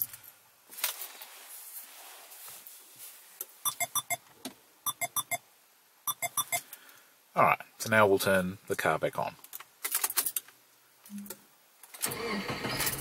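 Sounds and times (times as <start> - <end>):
short electronic beeps: 3.6 - 4.2, 4.9 - 5.4, 6.1 - 6.6.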